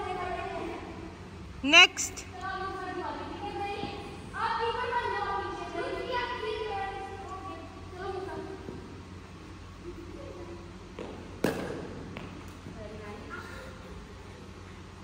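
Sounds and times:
people talking: 0.0s - 8.8s, 12.7s - 14.3s.

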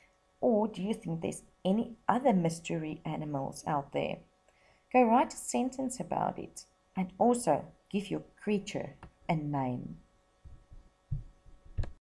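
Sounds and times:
faint steady hum: 0.0s - 12.0s
soft low thumps: 10.4s - 12.0s.

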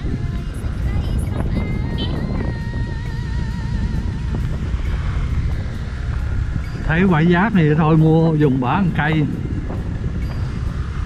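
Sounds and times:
road noise: 0.0s - 11.0s
wind buffeting microphone: 0.0s - 11.0s.

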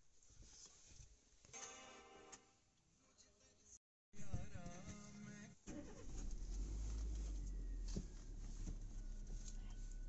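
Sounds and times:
low rumble in car cabin: 5.9s - 10.0s.

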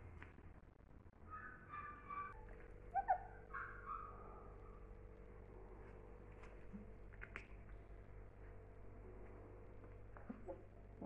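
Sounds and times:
puppy whining and yelping: 1.3s - 4.2s.

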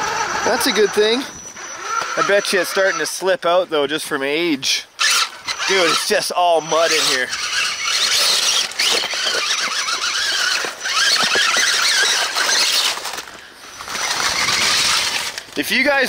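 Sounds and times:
rc car electric motor whining: 0.0s - 3.4s, 5.0s - 15.8s.

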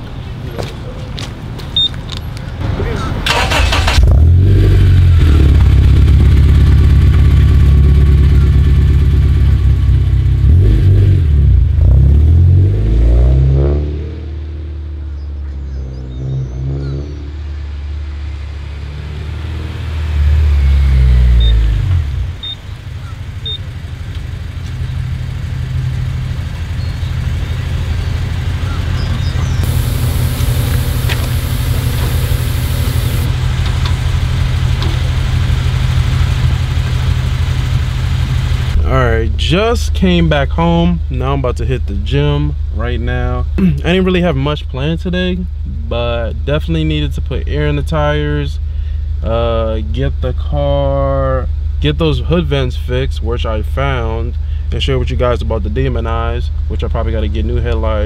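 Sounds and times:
car pulling away: 3.2s - 41.5s
car engine revving: 3.3s - 41.5s.

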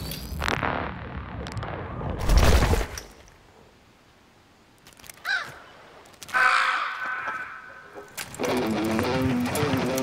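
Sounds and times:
crow cawing: 5.2s - 5.7s, 6.3s - 8.0s.

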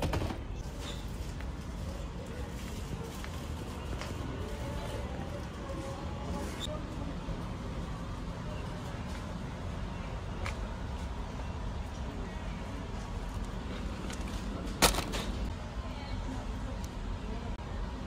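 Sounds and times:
supermarket background noise: 0.0s - 18.0s
item knocking into shopping cart: 14.8s - 15.4s.

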